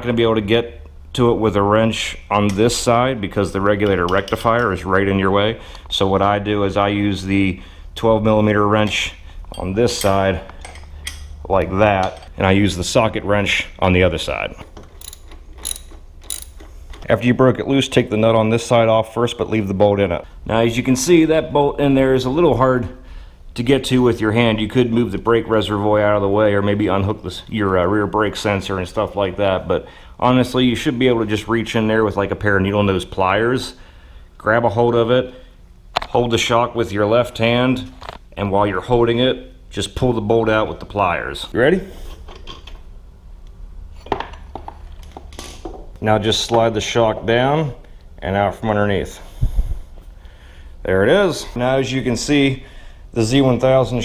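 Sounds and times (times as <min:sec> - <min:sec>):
socket ratchet clicking: 0:14.9 - 0:17.0.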